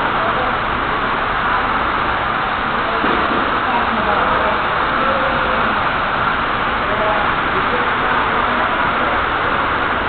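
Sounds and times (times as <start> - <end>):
busy mall hubbub: 0.0 - 10.0.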